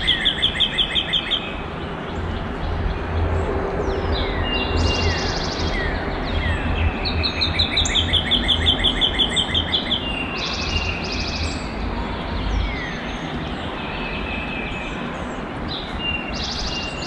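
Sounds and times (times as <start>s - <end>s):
rapid bird trill: 0.0s - 1.7s, 4.2s - 11.7s
songbirds calling and singing: 0.0s - 17.0s.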